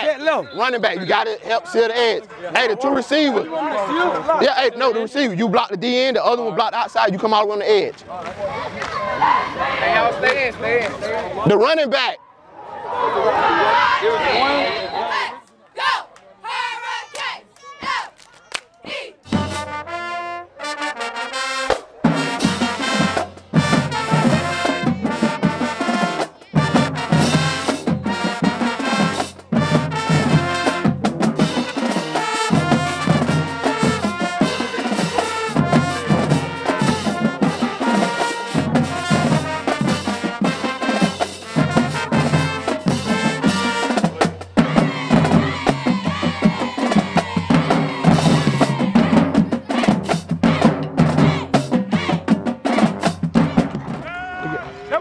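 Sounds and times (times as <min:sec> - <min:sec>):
band playing brass and drums: 0:18.9 - 0:55.0
trumpets: 0:18.9 - 0:55.0.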